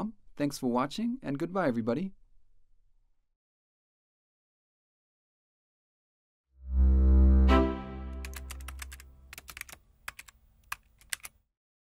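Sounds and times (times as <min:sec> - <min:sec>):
keyboard typing clicks: 0:08.1 - 0:11.4.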